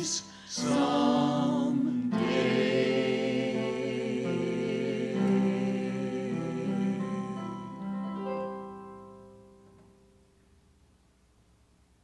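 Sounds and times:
group singing a hymn: 0.0s - 8.1s
keyboard accompaniment: 0.0s - 10.3s.

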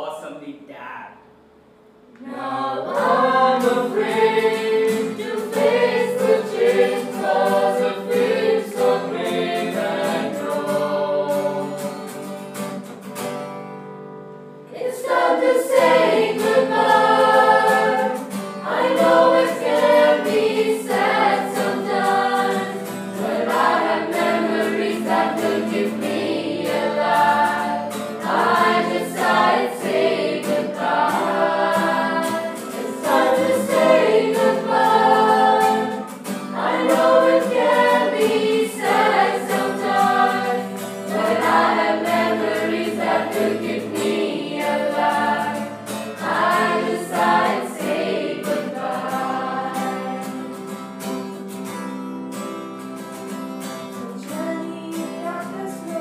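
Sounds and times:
group of voices singing: 2.2s - 12.2s, 14.7s - 50.7s, 54.0s - 56.0s.

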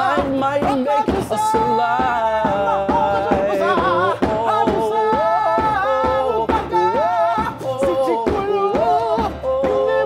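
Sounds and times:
two men singing in harmony: 0.0s - 10.0s.

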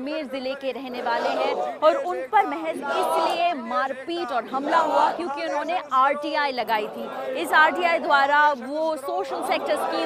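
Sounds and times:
crowd calling out slogans: 0.9s - 8.4s, 9.0s - 10.0s.

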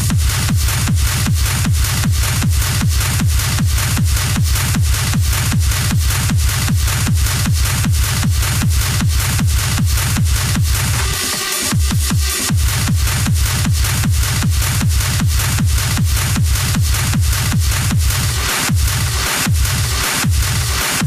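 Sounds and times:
hard techno kick drum: 0.0s - 21.0s.

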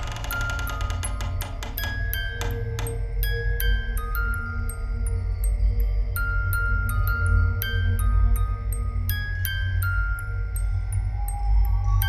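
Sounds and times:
low steady drone: 0.0s - 12.0s
music box melody: 0.0s - 12.0s.

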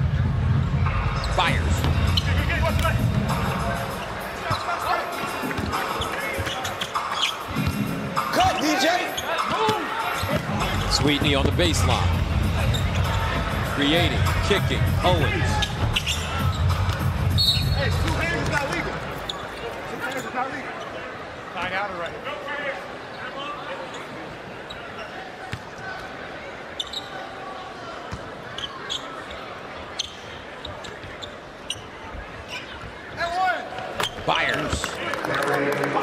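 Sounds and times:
crowd noise: 0.0s - 36.0s
arena music: 0.5s - 19.1s
scattered voices: 0.6s - 21.0s
high referee's whistle: 17.3s - 18.0s.

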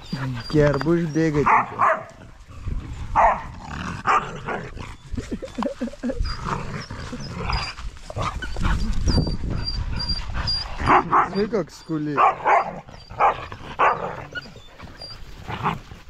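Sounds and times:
puppies whining and yelping: 0.0s - 1.4s, 4.7s - 15.9s.

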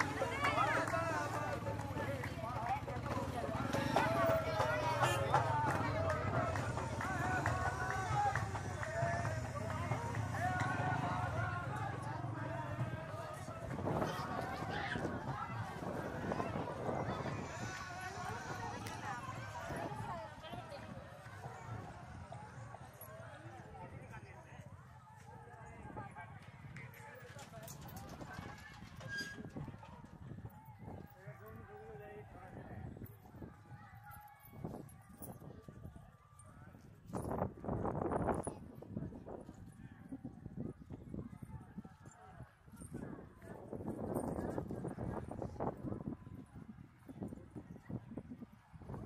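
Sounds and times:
footsteps on paved path: 0.0s - 23.8s
crowd voices talking and calling: 0.0s - 49.0s.

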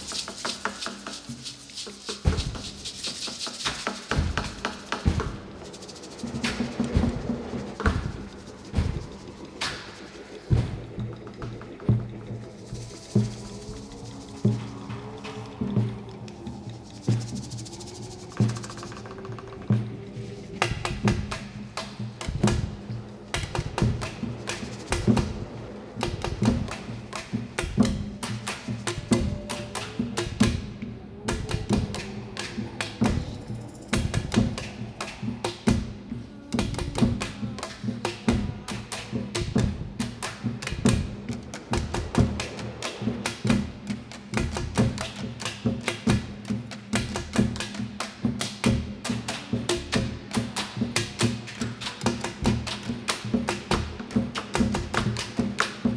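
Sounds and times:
drums beaten with mallets: 0.0s - 55.9s.

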